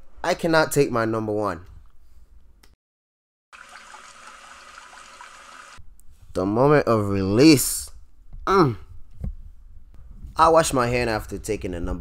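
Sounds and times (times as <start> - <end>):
man urinating into a urinal: 3.6 - 5.8.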